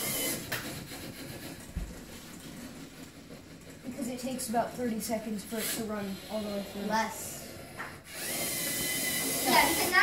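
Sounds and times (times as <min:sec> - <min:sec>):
robot motors whirring: 0:00.0 - 0:01.6, 0:05.4 - 0:10.0.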